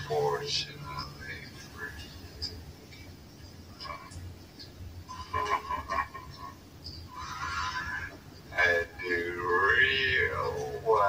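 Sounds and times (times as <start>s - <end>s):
slowed man's voice: 0.0s - 2.5s, 7.2s - 11.0s
steady low hum: 0.0s - 11.0s.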